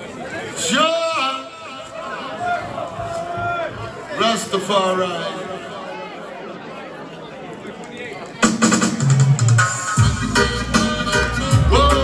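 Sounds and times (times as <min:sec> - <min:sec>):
crowd chatter: 0:00.0 - 0:12.0
reggae music over sound system: 0:08.4 - 0:12.0.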